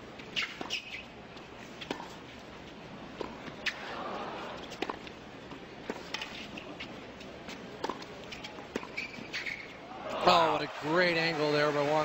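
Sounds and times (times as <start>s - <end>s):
sneakers squeaking on court: 0.3s - 2.2s, 5.9s - 9.8s.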